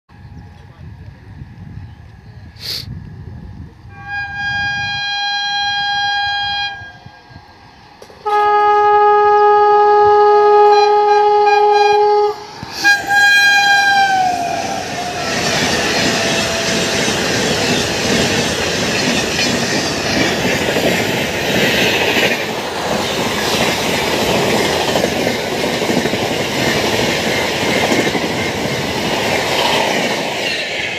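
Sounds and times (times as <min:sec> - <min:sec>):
train wheels roaring on rails: 0:00.1 - 0:30.9
train horn: 0:03.9 - 0:07.4, 0:08.2 - 0:17.3.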